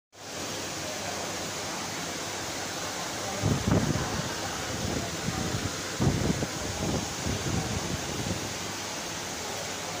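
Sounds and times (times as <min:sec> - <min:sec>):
steady background hiss: 0:00.2 - 0:10.0.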